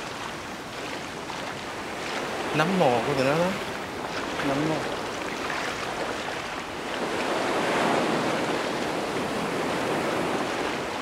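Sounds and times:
sea surf washing in: 0.0s - 11.0s.

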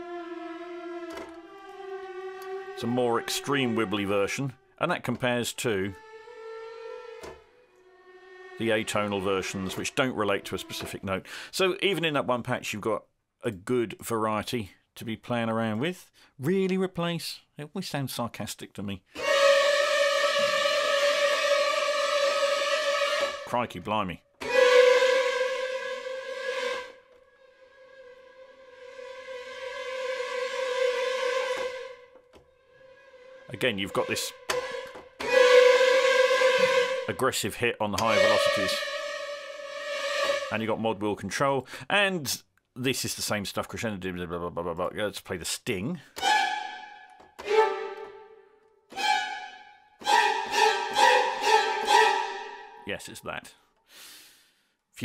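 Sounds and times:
held orchestral string notes: 0.0s - 12.3s, 19.1s - 41.5s, 46.1s - 53.4s.

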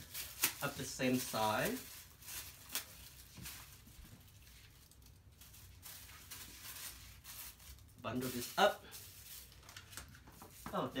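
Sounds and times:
paper crackle: 0.0s - 11.0s
paper crinkling and rustling: 0.0s - 11.0s.

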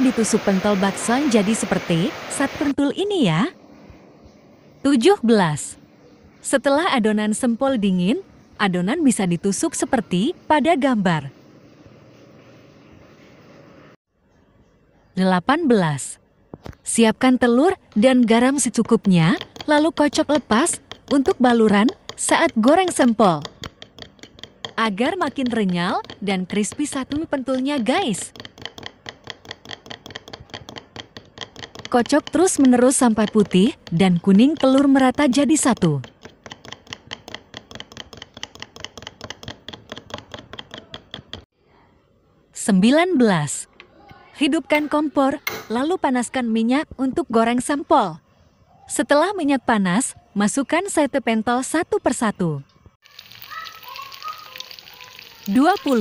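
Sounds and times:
fork beating eggs in a bowl: 17.9s - 41.4s
oil sizzling and crackling in a pan: 53.0s - 56.0s.

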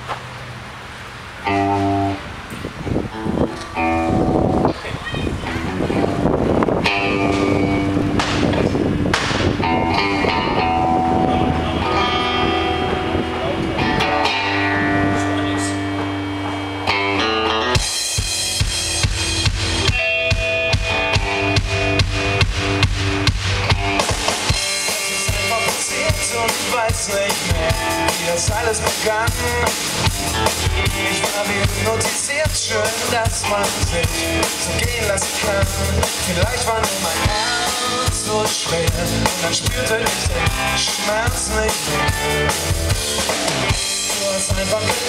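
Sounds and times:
live rock band: 1.4s - 2.3s, 2.9s - 45.0s
loud guitar chord: 1.5s - 2.3s, 3.1s - 4.8s, 5.5s - 45.0s
drum kit beat: 6.8s - 11.2s, 14.0s - 45.0s
sharp drum hits: 7.2s - 9.6s.

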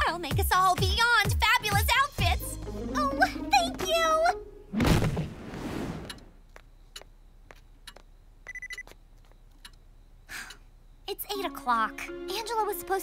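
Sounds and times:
whoosh with thud: 4.7s - 6.3s.

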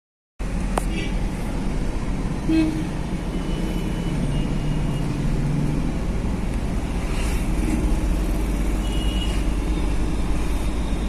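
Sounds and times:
low rumble of moving vehicle: 0.4s - 11.0s.

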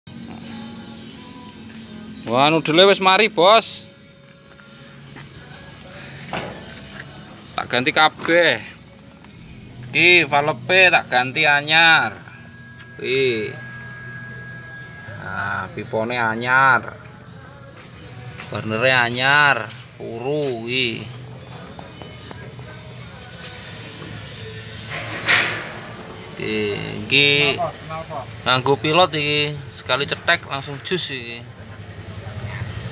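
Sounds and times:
faint background music: 0.1s - 32.9s
low steady hum: 9.0s - 18.3s
gas burner lighting whoosh: 11.3s - 17.0s, 23.0s - 29.6s.

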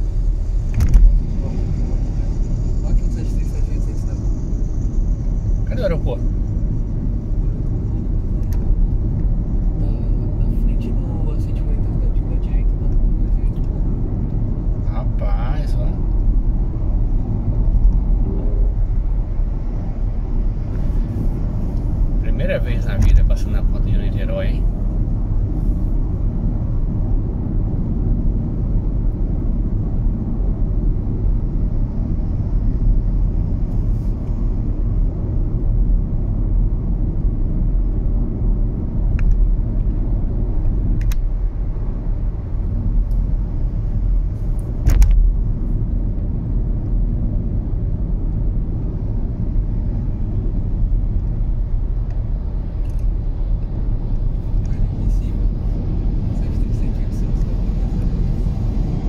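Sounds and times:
car road and engine rumble: 0.0s - 59.0s.

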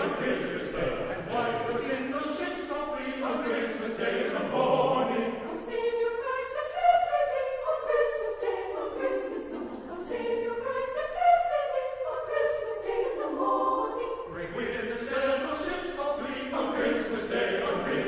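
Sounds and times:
choir singing slowly: 0.0s - 18.0s.

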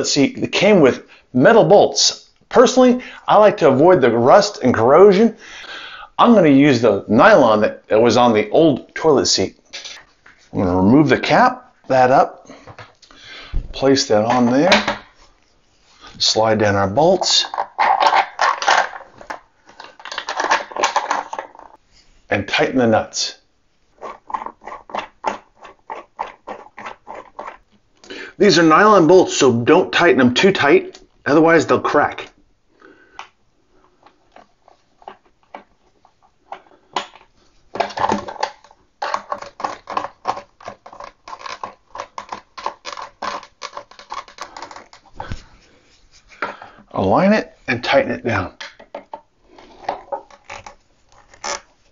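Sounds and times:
plastic bolts clicking and rattling: 17.5s - 21.7s, 37.0s - 45.1s.

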